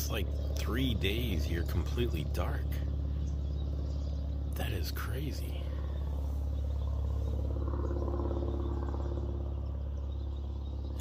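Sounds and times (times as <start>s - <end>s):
low mechanical hum: 0.0s - 11.0s.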